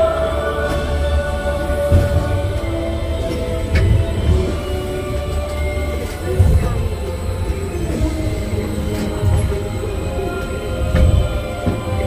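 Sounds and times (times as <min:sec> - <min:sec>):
ride vehicle rumbling on track: 0:00.0 - 0:12.0.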